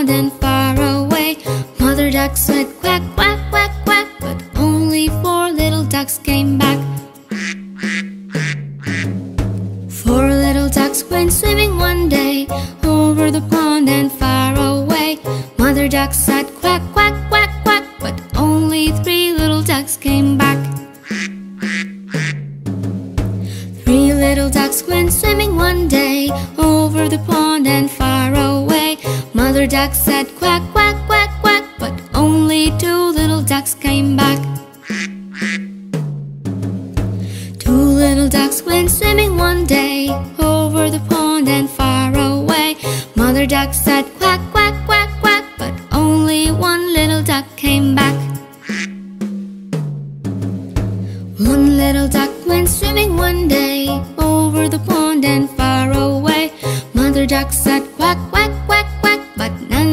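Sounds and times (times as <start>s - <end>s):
children's backing music: 0.0s - 49.9s, 50.9s - 59.9s
cartoon duck quacks: 7.3s - 9.2s, 21.0s - 22.4s, 34.8s - 35.7s, 48.6s - 49.0s.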